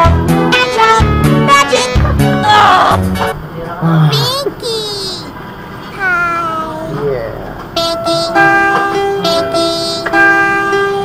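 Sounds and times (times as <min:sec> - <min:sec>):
cartoon baby cooing: 0:05.9 - 0:07.0
pitch-corrected singing: 0:07.8 - 0:08.6.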